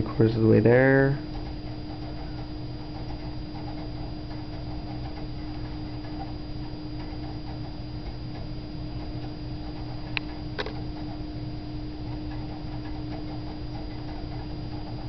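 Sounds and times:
computer hum and whine: 0.0 - 15.0.

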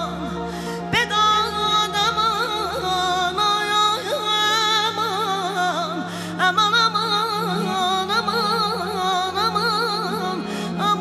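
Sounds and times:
instrumental accompaniment with drone: 0.0 - 11.0
woman singing ornamented line: 0.0 - 11.0.

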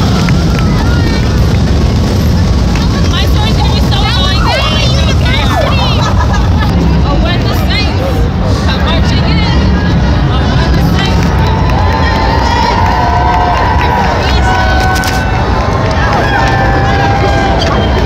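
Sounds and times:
crowd talking and shouting: 0.0 - 18.0
high excited voices: 0.0 - 18.0.

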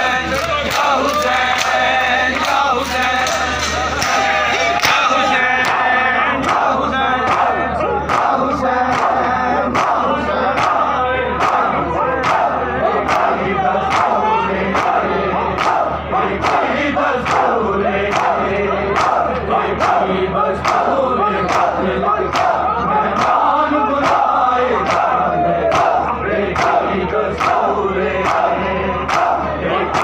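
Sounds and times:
many voices chanting a lament: 0.0 - 30.0
men beating chests in unison: 0.0 - 30.0.

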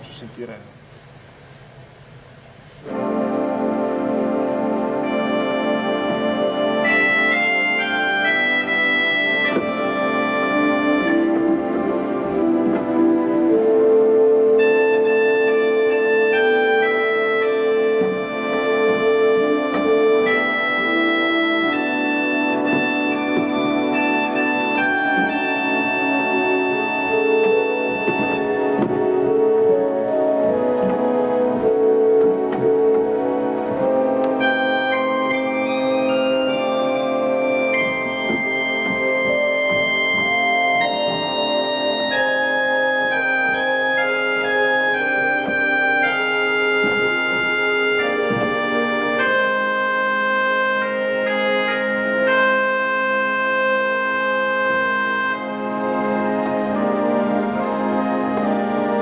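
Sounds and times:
pipe organ playing slowly: 0.0 - 59.0.

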